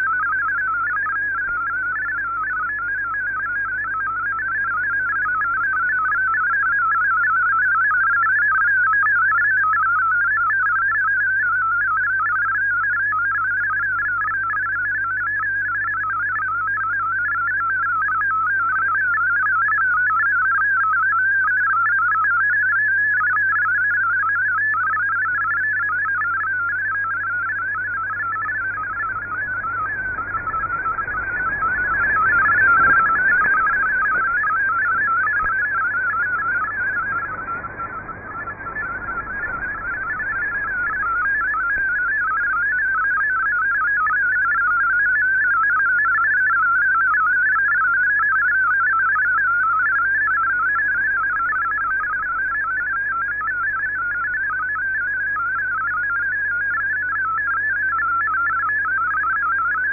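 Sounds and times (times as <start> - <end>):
low hum: 26.4 - 43.1
warble of hopping digital tones: 27.7 - 43.1
radio noise: 28.0 - 43.4.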